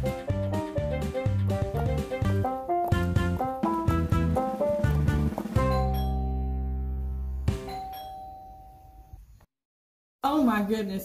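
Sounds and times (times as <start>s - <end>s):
doorbell chime: 5.6s - 6.9s, 7.5s - 9.2s.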